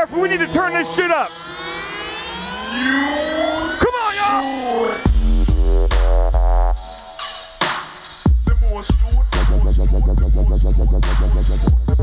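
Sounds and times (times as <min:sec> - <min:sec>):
electronic rising sweep: 0:00.0 - 0:07.2.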